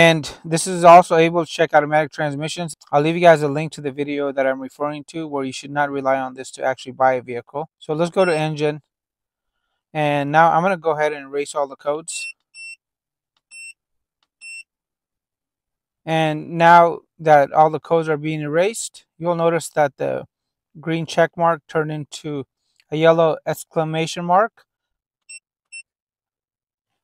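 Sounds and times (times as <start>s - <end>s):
high-pitched key-press beeps: 8.2s - 8.5s.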